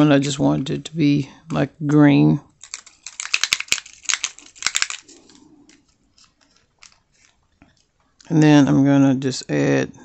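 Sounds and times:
bottle cap twisting ticks: 2.6s - 7.9s
plastic bottles clicking and rustling: 2.6s - 8.3s.

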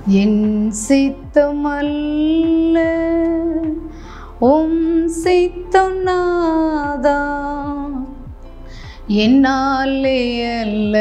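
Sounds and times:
low thudding beat: 0.0s - 11.0s.

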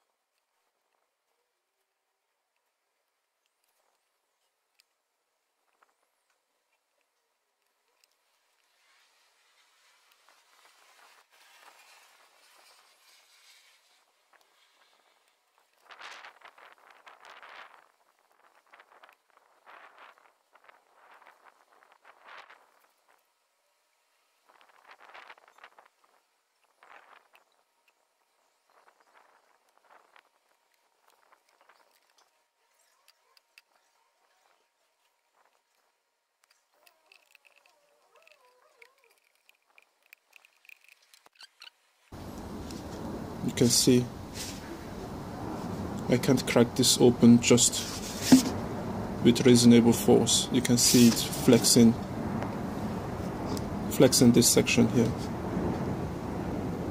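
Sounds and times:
soft hiss: 2.7s - 33.0s, 41.0s - 56.0s
scraping and rustling plastic: 8.1s - 17.9s.

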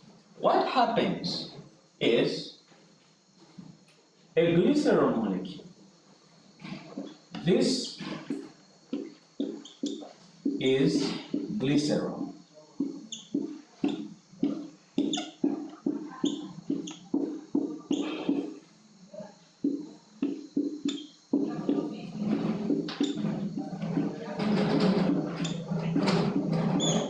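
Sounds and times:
whiteboard marker squeaking: 8.3s - 18.7s, 19.6s - 27.0s.

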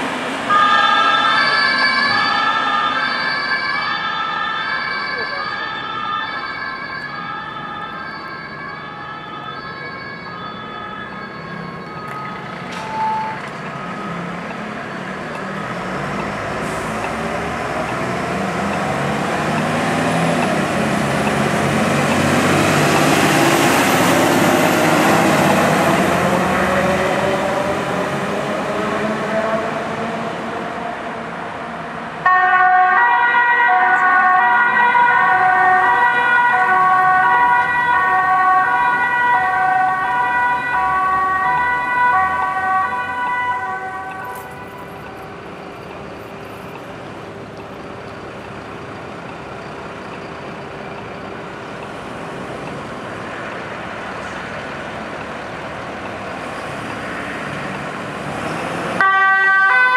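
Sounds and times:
two-tone electronic siren: 0.4s - 16.1s, 32.2s - 45.4s, 59.0s - 59.9s
truck engine accelerating: 13.4s - 31.2s.

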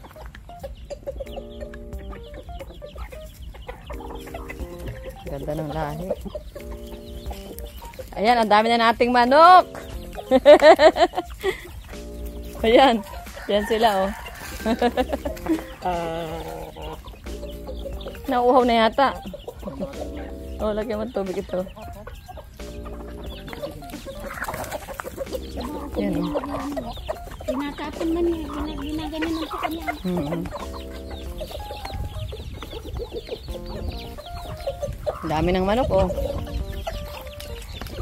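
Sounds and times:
background music with sustained chords: 0.0s - 38.0s
chickens clucking: 0.0s - 38.0s.

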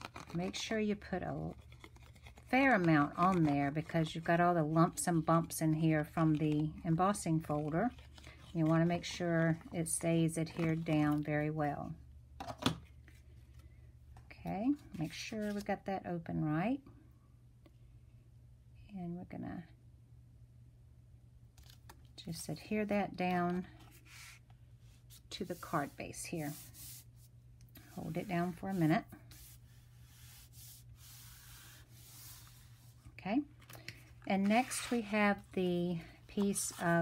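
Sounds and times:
cardstock rustling: 0.0s - 11.3s, 27.8s - 37.0s.

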